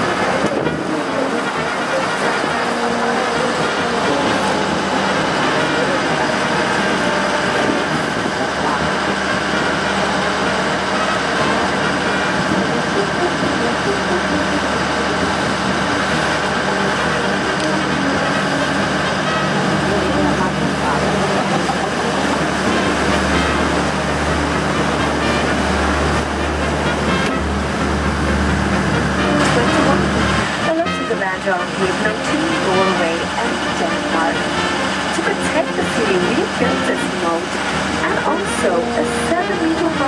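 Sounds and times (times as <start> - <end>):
boat engine running: 0.0 - 40.0
indistinct voices: 0.0 - 40.0.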